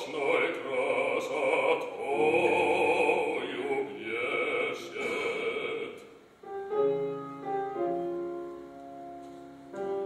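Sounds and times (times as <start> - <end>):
sustained piano chords: 0.0 - 10.0.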